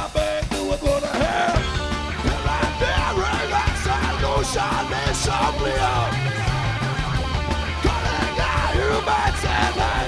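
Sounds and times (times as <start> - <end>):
hard rock band playing: 0.0 - 10.0
shouted rock vocals: 0.0 - 10.0.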